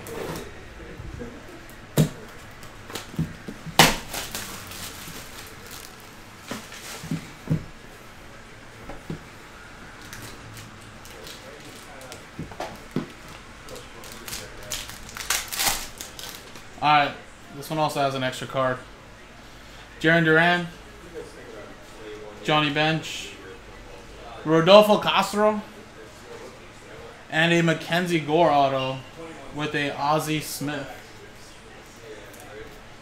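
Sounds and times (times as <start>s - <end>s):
shrink wrap slit and peeled: 3.8s - 6.0s, 13.7s - 16.7s
foil pack crinkling: 3.8s - 7.1s, 13.7s - 16.7s.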